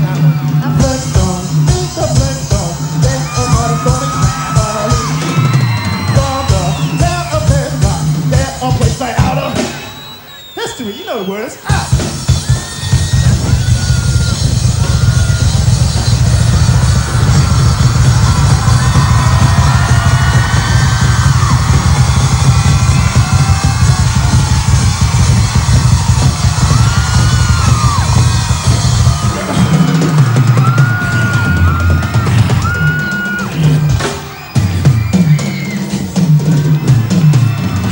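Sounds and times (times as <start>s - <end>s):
bass drum: 0.0s - 9.8s, 11.7s - 37.9s
crowd screaming: 0.0s - 37.9s.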